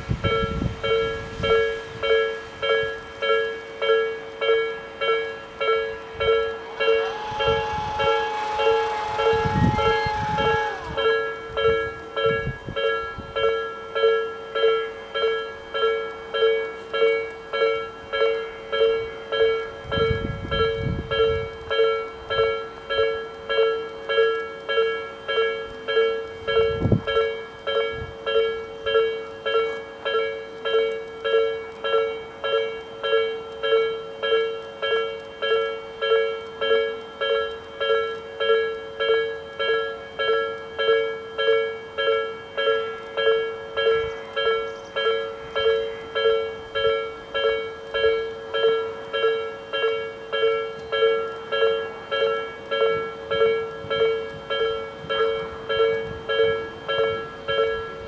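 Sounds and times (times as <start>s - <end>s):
electronic crossing bell ringing: 0.2s - 58.0s.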